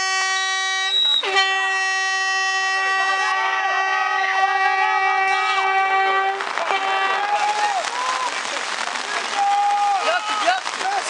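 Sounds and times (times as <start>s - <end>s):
steady held horn tone: 0.0s - 7.2s
faint shouting: 9.3s - 10.6s.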